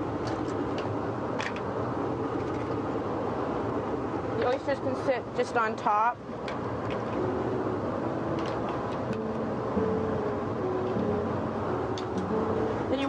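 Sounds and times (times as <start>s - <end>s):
kitchen background roar: 0.0s - 7.4s
soft background music: 7.0s - 13.0s.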